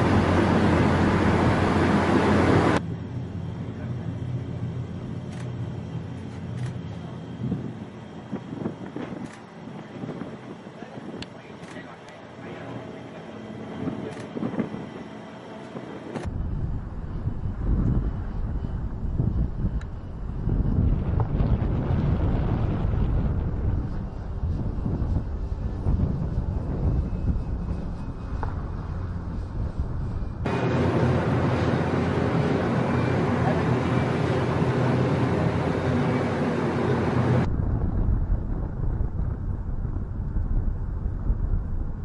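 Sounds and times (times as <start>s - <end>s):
engine drone: 0.0s - 42.0s
wind buffeting microphone: 7.0s - 12.0s, 13.7s - 42.0s.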